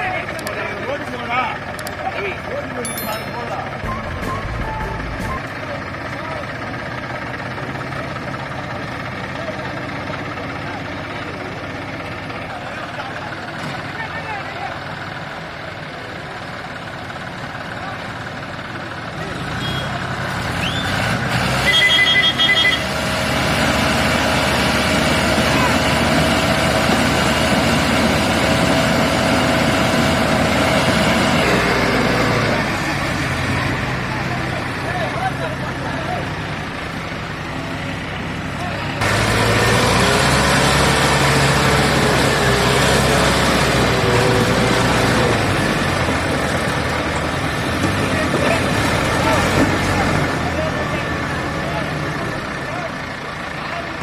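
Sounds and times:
diesel tractor engine under load: 0.0 - 54.0
rapid high beeping: 2.9 - 5.5.

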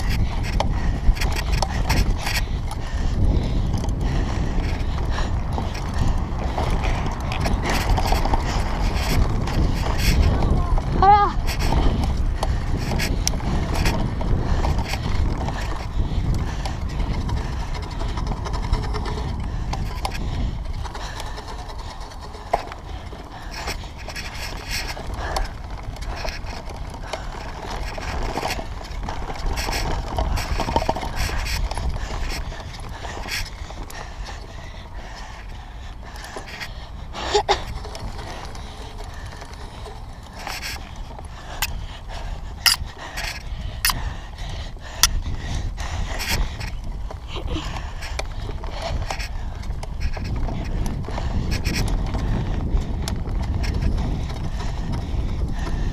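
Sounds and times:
bike rattling and knocking: 0.0 - 55.9
wind and tyre rumble: 0.0 - 55.9.

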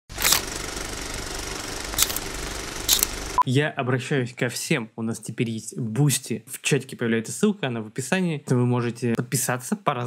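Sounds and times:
mechanical clatter with hiss: 0.1 - 3.4.

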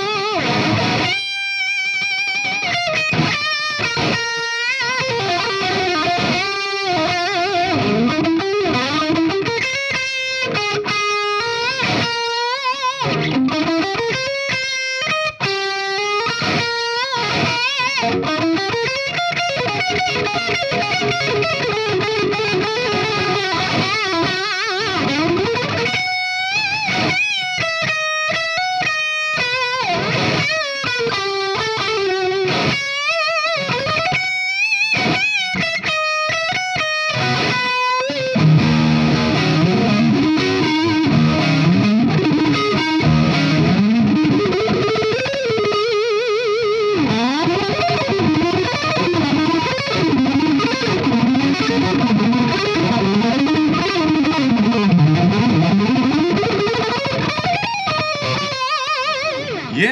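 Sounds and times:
distorted electric guitar lead: 0.0 - 59.9.

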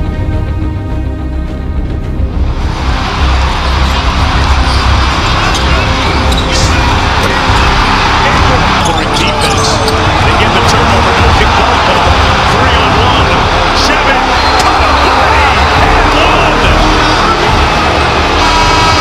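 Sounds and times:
background music: 0.0 - 19.0
arena crowd noise: 2.5 - 19.0.

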